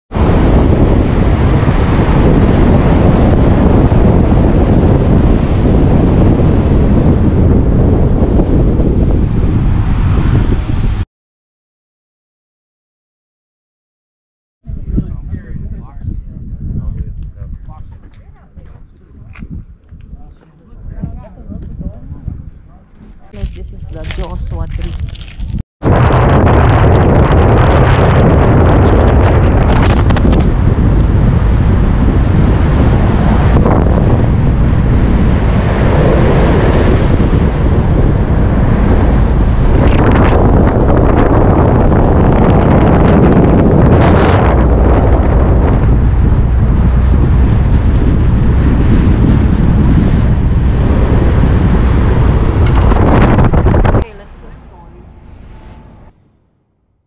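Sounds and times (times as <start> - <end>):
road noise: 0.1 - 11.0, 17.8 - 25.6, 27.8 - 56.9
wind buffeting microphone: 0.1 - 11.0, 14.6 - 56.2.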